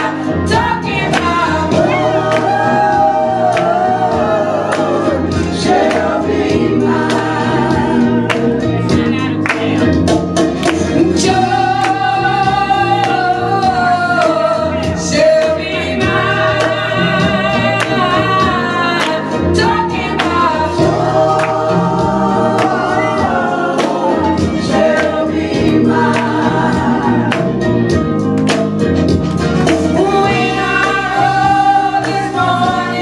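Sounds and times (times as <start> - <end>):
group singing gospel: 0.0 - 33.0
low instrumental backing: 0.0 - 33.0.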